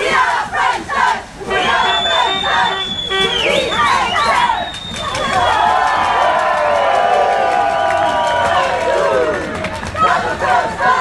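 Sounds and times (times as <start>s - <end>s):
cheerleaders shouting a chant: 0.0s - 11.0s.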